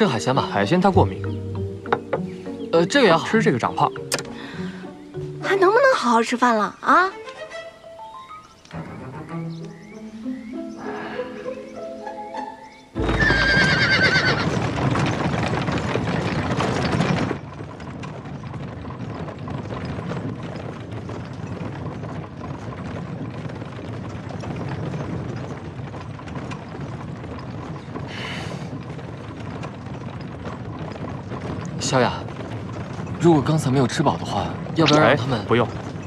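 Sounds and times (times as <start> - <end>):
carriage rolling with hoofbeats: 0.0 - 10.8, 11.4 - 36.0
horse whinnying: 13.0 - 14.8.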